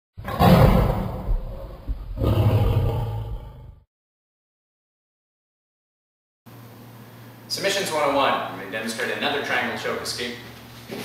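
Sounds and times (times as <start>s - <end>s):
deep roar: 0.2s - 3.9s.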